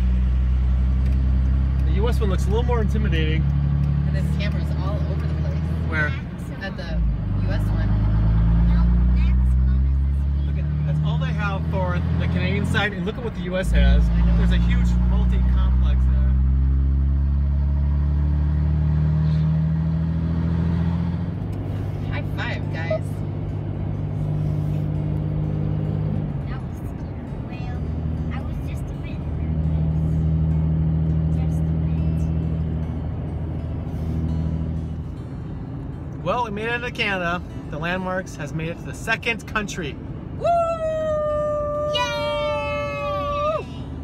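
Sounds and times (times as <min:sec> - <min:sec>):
vehicle engine accelerating: 0:00.0 - 0:44.0.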